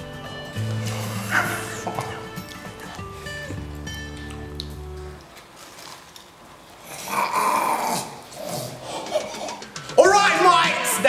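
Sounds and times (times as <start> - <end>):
background music with bass line: 0.0 - 5.2.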